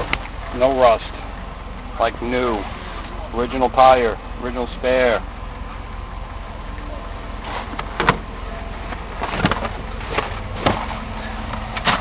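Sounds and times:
steady low hum: 0.0 - 12.0
sharp knocks and clunks: 7.7 - 8.3, 8.9 - 11.0.

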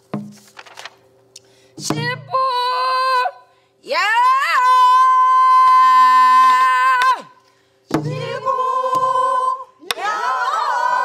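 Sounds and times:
woman singing folk song: 1.8 - 7.3.

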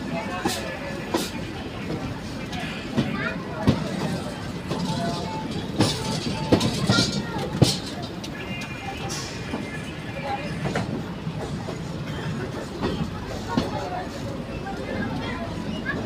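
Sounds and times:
train wheels rumbling on rails: 0.0 - 16.0
rail joint clicks: 0.2 - 16.0.

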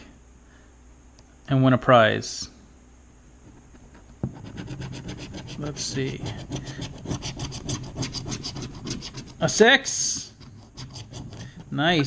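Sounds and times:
scratching lottery ticket: 4.3 - 12.0.

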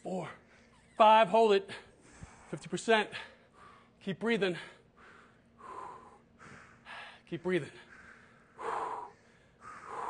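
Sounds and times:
person breathing hard: 1.7 - 10.0.

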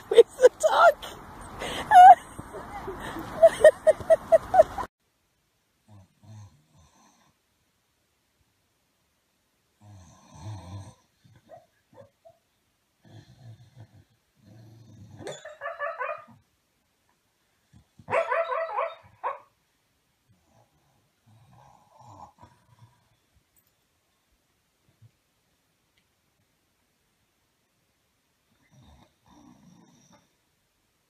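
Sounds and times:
dog drawn-out high calls: 15.3 - 16.4, 18.1 - 19.5.

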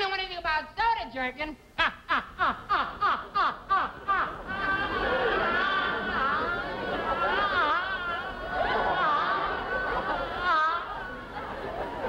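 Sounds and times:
studio audience laughing: 1.8 - 12.0.

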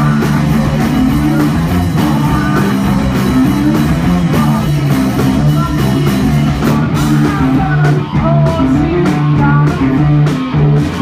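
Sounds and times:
bass guitar: 0.0 - 11.0
drum kit and cymbals: 0.0 - 11.0
electric guitar: 0.0 - 11.0.

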